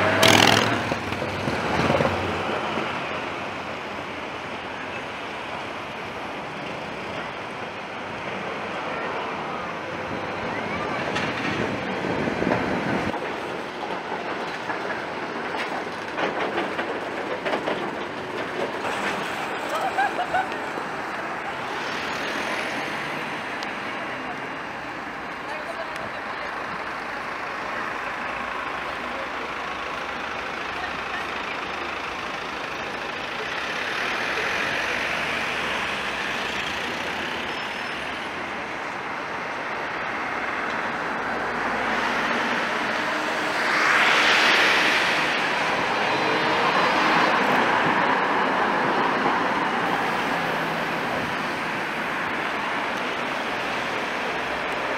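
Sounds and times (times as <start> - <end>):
street background: 0.0 - 54.9
tram wheel and motor noise: 0.0 - 54.9
people talking: 8.7 - 11.9, 23.7 - 37.2.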